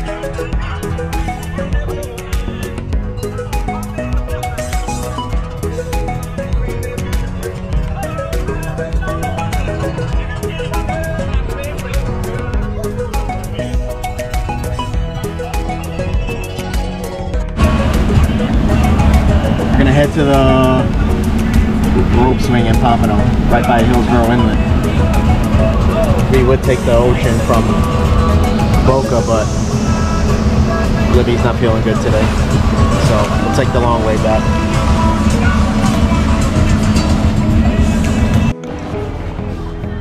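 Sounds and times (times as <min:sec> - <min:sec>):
man's voice: 0:00.0 - 0:13.8, 0:15.1 - 0:38.6
background music with steady beat: 0:00.0 - 0:40.0
motorboat engine running: 0:17.6 - 0:39.7.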